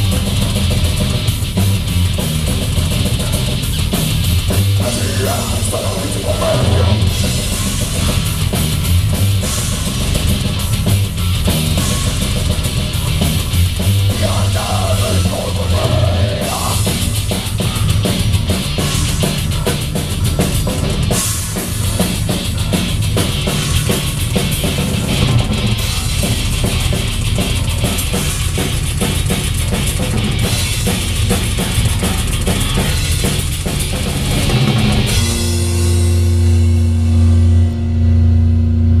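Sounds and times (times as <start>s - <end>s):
drum kit rapid strikes: 0.0s - 37.8s
live rock band playing: 0.0s - 38.7s
low note ringing: 35.9s - 39.0s.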